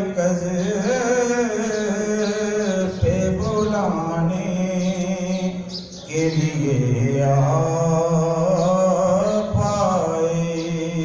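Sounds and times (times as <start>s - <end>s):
man chanting devotional poem: 0.0s - 11.0s.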